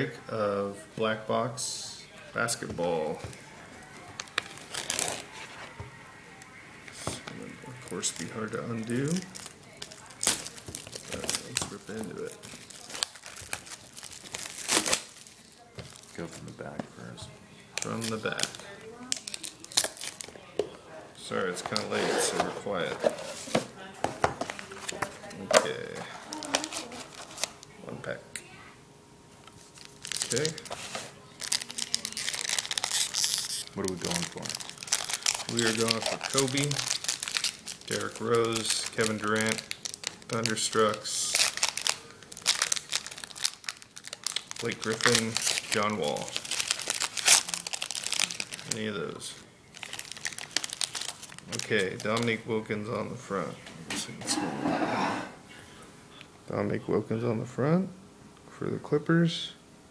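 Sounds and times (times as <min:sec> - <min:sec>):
plastic shrink wrap crinkling: 0:03.3 - 0:05.8, 0:06.4 - 0:16.6, 0:17.7 - 0:20.5, 0:24.4 - 0:27.7, 0:29.4 - 0:52.4.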